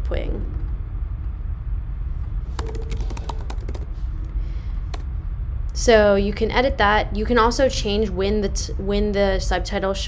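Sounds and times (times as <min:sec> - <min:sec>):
steady low hum: 0:00.0 - 0:10.0
keyboard key clicks: 0:02.6 - 0:03.9.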